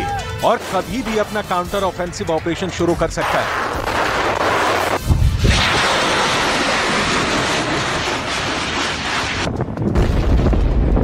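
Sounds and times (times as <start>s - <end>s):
rocket launch roar: 3.3s - 11.0s.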